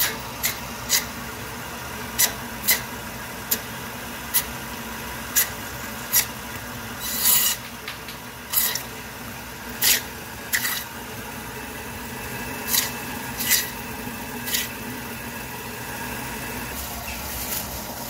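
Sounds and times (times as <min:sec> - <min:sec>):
saw blade cutting bone: 0:00.0 - 0:01.2, 0:02.2 - 0:02.9, 0:04.3 - 0:04.5, 0:05.3 - 0:06.4, 0:07.0 - 0:07.7, 0:08.5 - 0:09.0, 0:09.8 - 0:10.9, 0:12.6 - 0:13.8, 0:14.4 - 0:14.8
band saw humming: 0:00.0 - 0:18.0.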